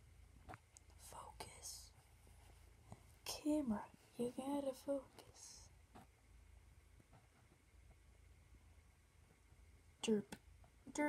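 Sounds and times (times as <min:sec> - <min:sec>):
low room hum: 0:00.0 - 0:11.0
faint whisper: 0:00.9 - 0:05.7.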